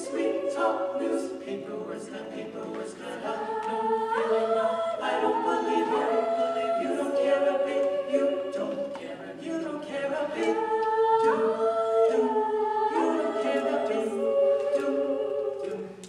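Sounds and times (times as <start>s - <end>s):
a cappella group singing harmony: 0.0s - 16.0s.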